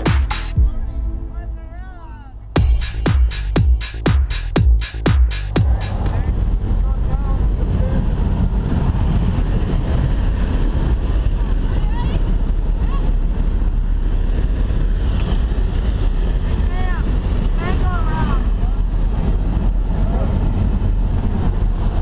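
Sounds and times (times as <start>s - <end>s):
aircraft engine roar: 0.0s - 22.0s
wind roar: 5.6s - 22.0s.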